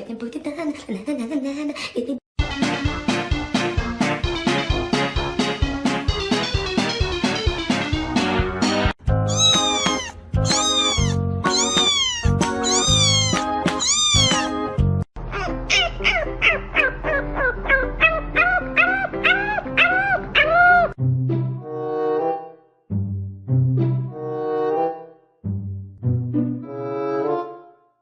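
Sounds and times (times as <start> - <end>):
background music: 2.4 - 27.9
cat meowing: 9.3 - 14.5, 17.7 - 21.0
puppy whining: 9.3 - 14.6, 15.2 - 21.0.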